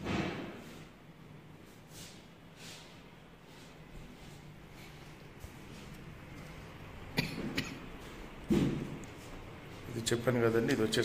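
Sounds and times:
person coughing: 7.1s - 8.0s.

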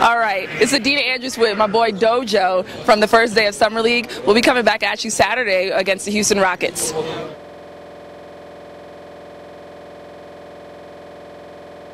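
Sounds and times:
buzzy electronic hum: 0.0s - 11.9s.

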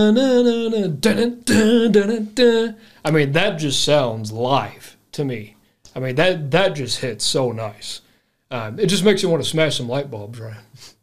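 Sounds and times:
man singing without words: 0.0s - 8.0s.

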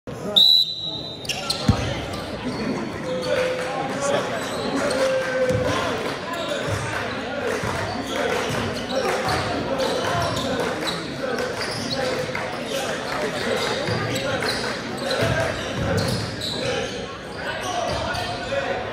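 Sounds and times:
voices echoing in hall: 0.1s - 18.9s
whistle blast: 0.3s - 1.4s.

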